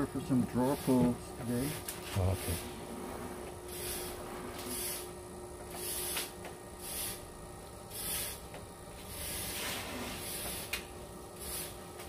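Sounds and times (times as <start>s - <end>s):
potter's wheel humming: 0.0s - 12.0s.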